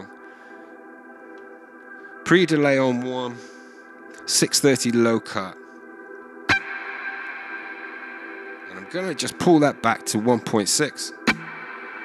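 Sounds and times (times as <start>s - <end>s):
electric guitar chord with reverb: 6.5s - 10.1s, 11.2s - 12.0s.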